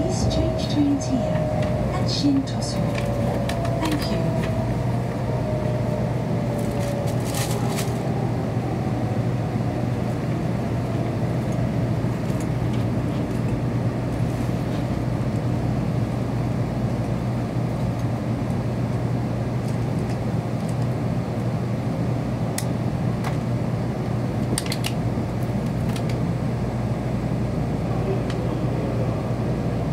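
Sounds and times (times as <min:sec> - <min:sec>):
train cabin hum and rumble: 0:00.0 - 0:29.9.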